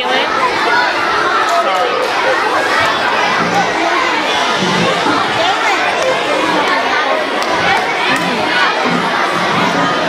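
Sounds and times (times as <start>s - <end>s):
crowd of children chattering: 0.0s - 10.0s.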